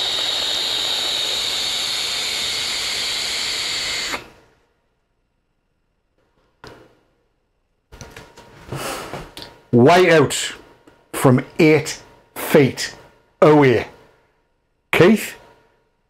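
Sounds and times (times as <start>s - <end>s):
vape inhale hiss with whistle: 0.0s - 4.3s.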